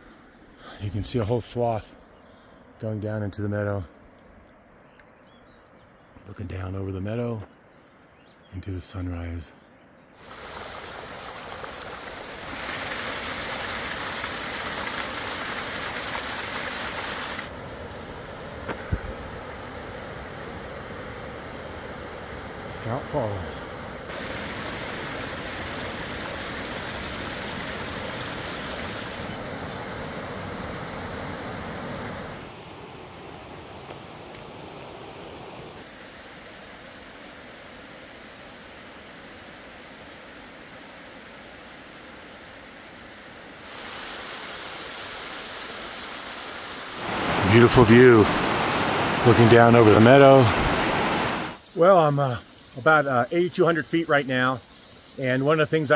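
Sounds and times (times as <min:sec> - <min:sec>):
stream water rushing over rocks: 0:10.2 - 0:17.6, 0:24.1 - 0:35.2, 0:43.5 - 0:51.9.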